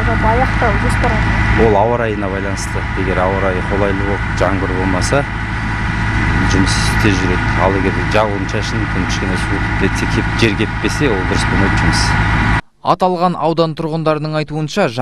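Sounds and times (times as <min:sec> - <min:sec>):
diesel engine humming: 0:00.0 - 0:13.4
man speaking: 0:01.3 - 0:05.3, 0:06.3 - 0:12.1, 0:12.8 - 0:15.0.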